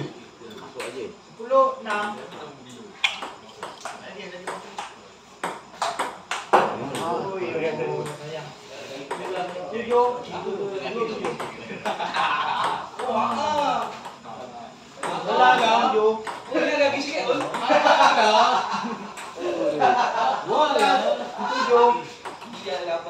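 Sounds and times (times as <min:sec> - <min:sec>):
voices talking: 0:00.0 - 0:23.0.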